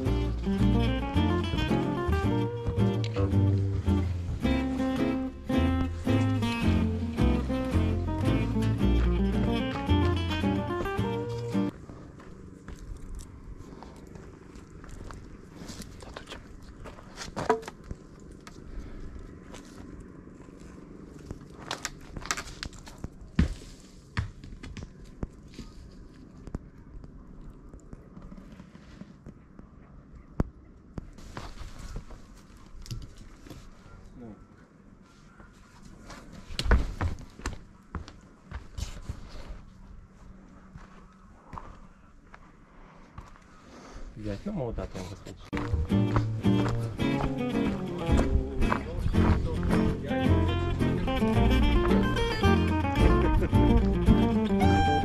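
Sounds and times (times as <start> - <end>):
acoustic guitar music: 0.0 - 11.7, 45.5 - 55.0
faint outdoor background: 0.0 - 55.0.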